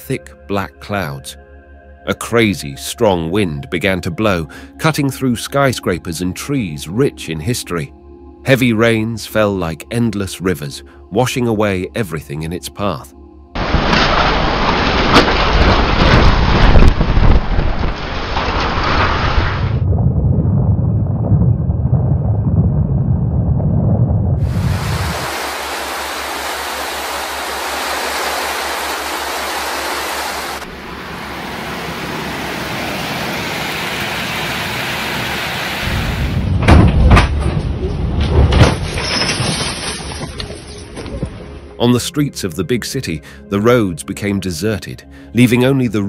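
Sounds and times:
heavy rain: 0:13.6 - 0:19.8, 0:24.4 - 0:36.7
strong wind: 0:13.6 - 0:38.9
wind buffeting microphone: 0:15.4 - 0:25.8.

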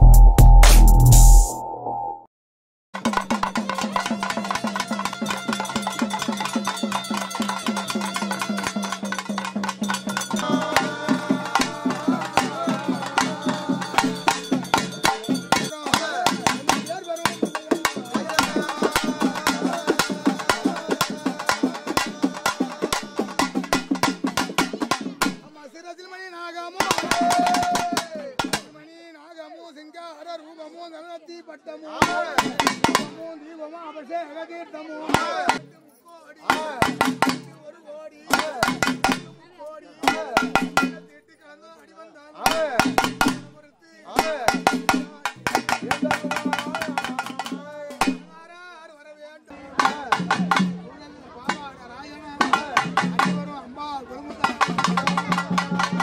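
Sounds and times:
loud pitched sound: 0:00.0 - 0:02.2
pitched sounds: 0:00.0 - 0:02.2, 0:09.8 - 0:25.5
hand drum beating fast: 0:03.0 - 0:25.4, 0:26.8 - 0:28.7, 0:42.5 - 0:43.5, 0:44.2 - 0:48.3, 0:49.8 - 0:50.8, 0:52.4 - 0:53.4, 0:54.4 - 0:56.0.

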